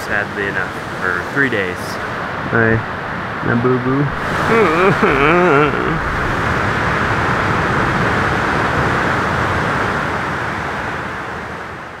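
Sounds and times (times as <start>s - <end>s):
surf breaking on reef: 4.1s - 10.8s.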